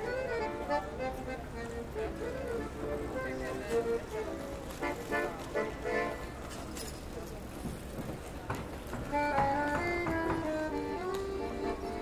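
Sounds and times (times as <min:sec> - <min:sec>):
accordion playing: 0:00.0 - 0:06.4, 0:09.1 - 0:12.0
city traffic rumble: 0:00.0 - 0:12.0
people talking: 0:00.0 - 0:12.0.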